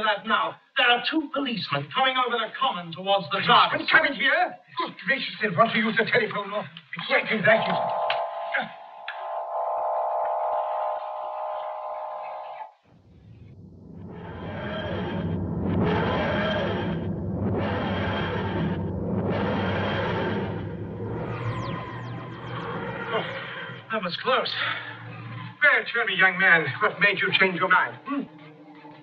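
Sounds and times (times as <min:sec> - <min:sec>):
steady electronic hum: 0:07.4 - 0:28.3
pulsing electronic whooshing: 0:07.8 - 0:24.4.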